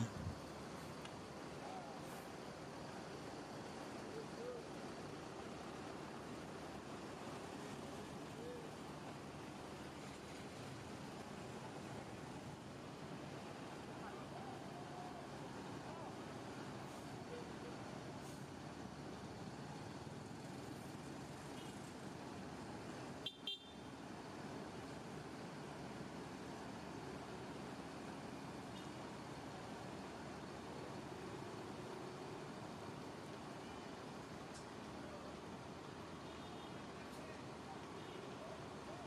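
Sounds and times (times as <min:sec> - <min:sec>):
traffic noise: 0:00.0 - 0:39.0.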